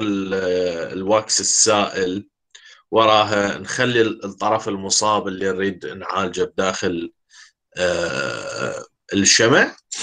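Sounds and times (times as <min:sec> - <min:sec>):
short breath: 0:02.5 - 0:02.9, 0:07.3 - 0:07.6.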